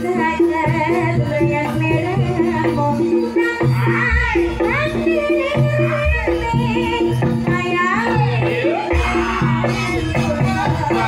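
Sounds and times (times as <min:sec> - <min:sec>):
woman singing gliding vocal line: 0:00.0 - 0:11.0.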